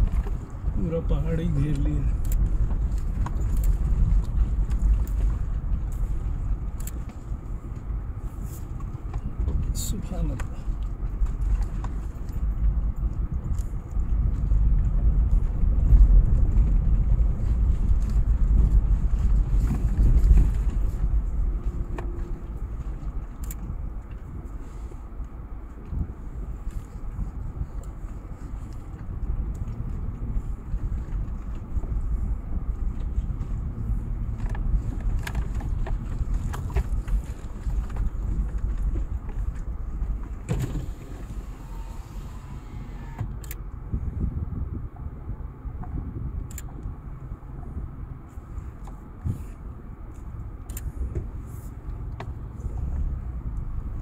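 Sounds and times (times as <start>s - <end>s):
car rumbling over dirt track: 0.0s - 54.0s.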